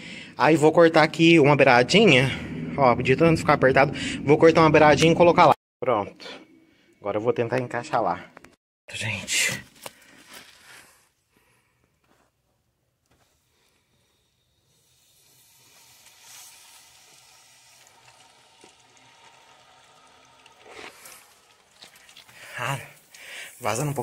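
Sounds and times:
water running from tap: 14.7s - 24.0s.

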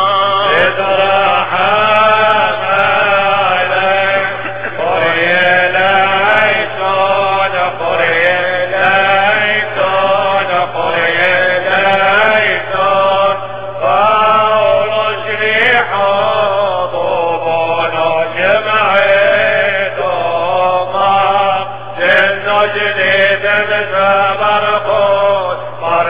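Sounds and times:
low hum: 0.0s - 26.0s
man chanting: 0.0s - 26.0s.

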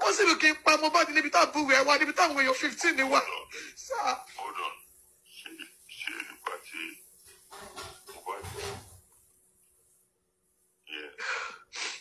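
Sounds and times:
person gasping: 11.2s - 12.0s.

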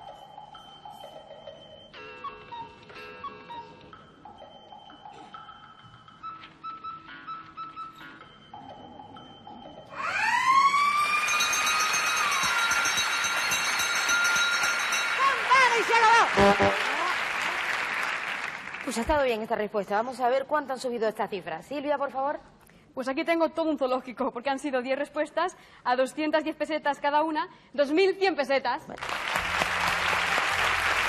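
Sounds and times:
soft electronic countdown tones: 0.0s - 10.0s, 16.4s - 16.9s.

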